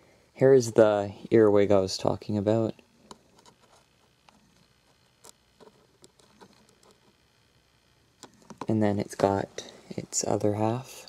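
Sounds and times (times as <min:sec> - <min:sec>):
faint clicks and taps: 0:08.2 - 0:08.7.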